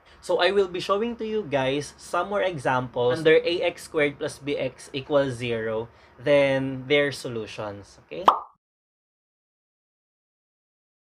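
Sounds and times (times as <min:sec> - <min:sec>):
man speaking: 0:00.2 - 0:08.3.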